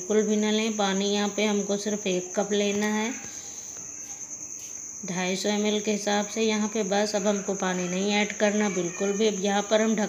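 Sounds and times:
cricket trill: 0.0 - 10.0.

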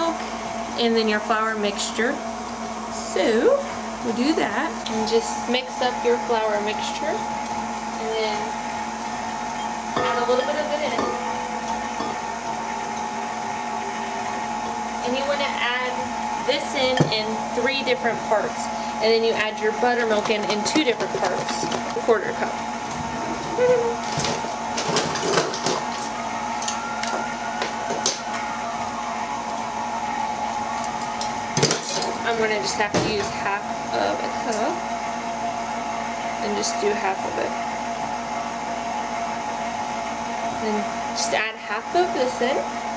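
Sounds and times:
stand mixer motor humming: 6.3 - 41.0.

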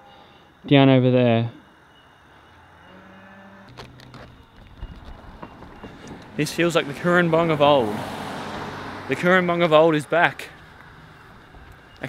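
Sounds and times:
cattle mooing faintly: 2.5 - 4.4.

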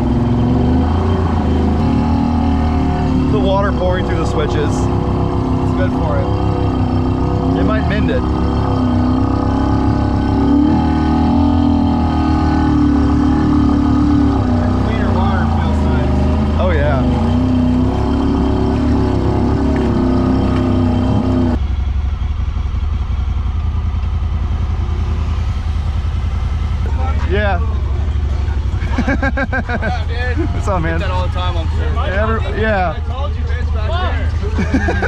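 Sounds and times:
vehicle engine running in water: 8.9 - 32.5.

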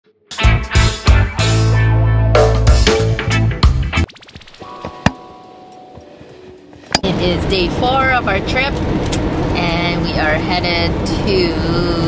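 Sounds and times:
intro music: 0.3 - 8.2.

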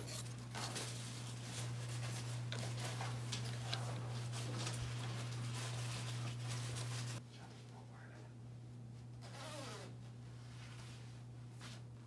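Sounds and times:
clothing rustle: 0.0 - 7.2
low electrical hum: 0.0 - 12.0.

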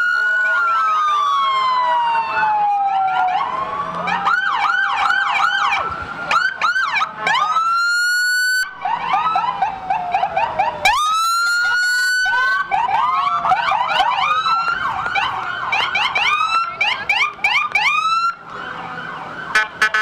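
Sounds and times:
emergency vehicle sirens: 0.0 - 20.0.

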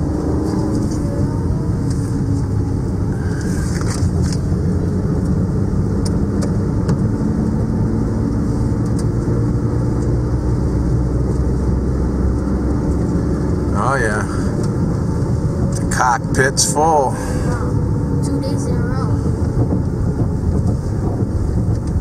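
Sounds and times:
engine and tyre hum: 0.0 - 22.0.

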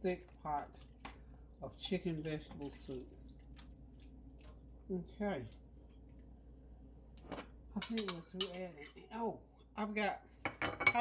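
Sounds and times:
tomatoes splashing into soup: 2.5 - 6.4.

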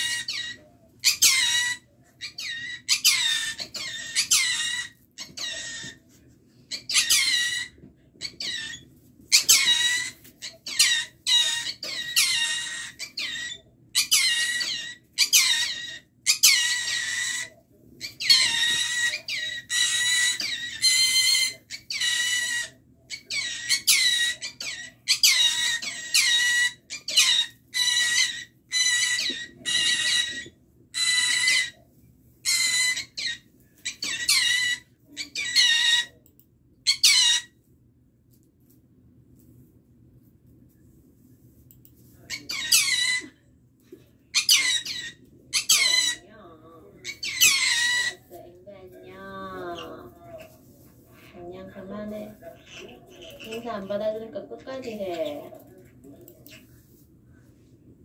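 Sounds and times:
parrot screeching: 0.0 - 6.0, 6.7 - 31.8, 32.4 - 36.2, 36.8 - 37.6, 42.3 - 43.4, 44.3 - 46.3, 47.0 - 48.3.

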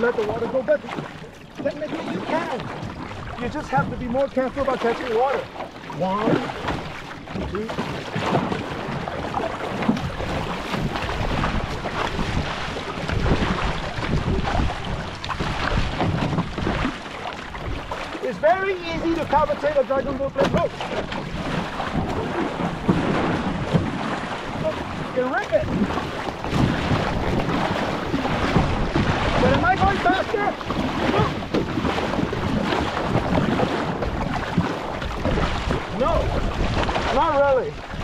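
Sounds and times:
paddle splashing water: 0.0 - 38.0
wind buffeting microphone: 0.0 - 38.0.

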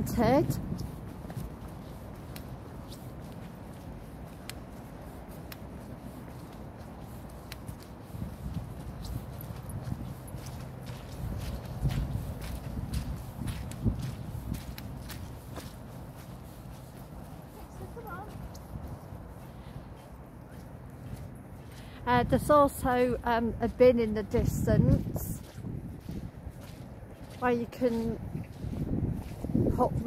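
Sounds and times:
wind buffeting microphone: 0.0 - 20.1, 21.0 - 30.0
footsteps on wet grass: 0.0 - 30.0.

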